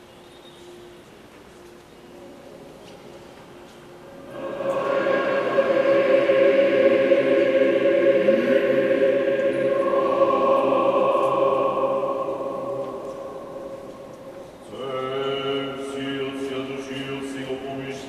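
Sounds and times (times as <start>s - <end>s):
choir singing sustained chant: 4.1s - 18.0s.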